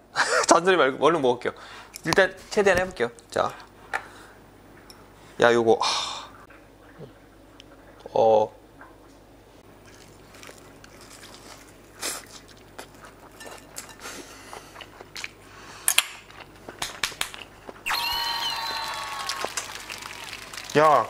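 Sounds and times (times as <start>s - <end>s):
crunching of fried food: 9.8s - 13.8s
high held tone: 17.9s - 19.3s.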